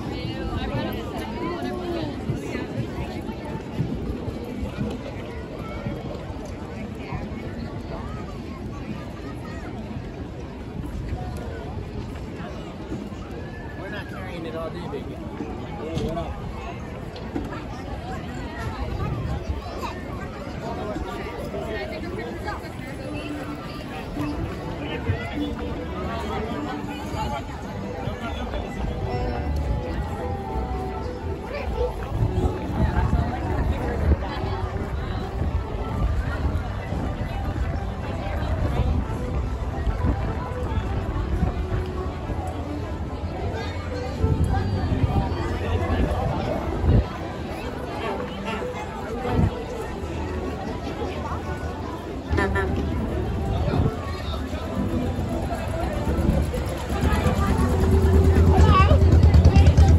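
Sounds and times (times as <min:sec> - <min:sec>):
crowd chatter: 0:00.0 - 0:59.9.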